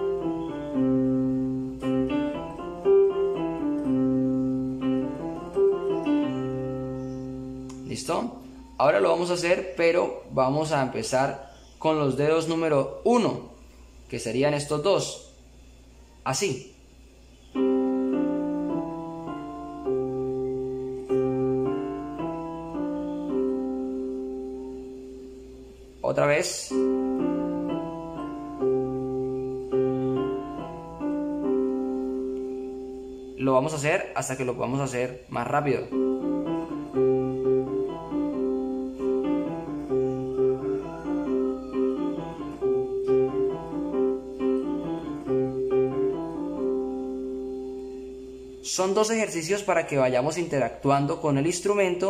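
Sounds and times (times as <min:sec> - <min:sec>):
piano finger exercise: 0:00.0 - 0:09.6, 0:17.5 - 0:25.4, 0:26.1 - 0:33.8, 0:35.4 - 0:48.3.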